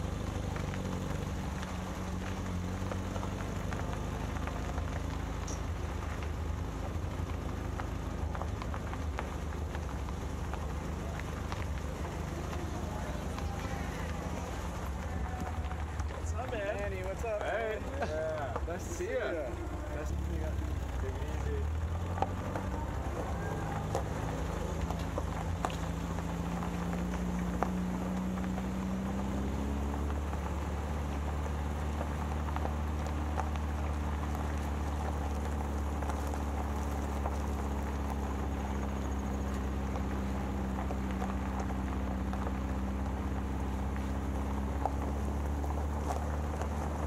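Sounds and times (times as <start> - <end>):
camper van rumble: 0.0 - 47.0
tyres crunching on gravel: 0.0 - 47.0
vehicle engine running: 0.0 - 47.0.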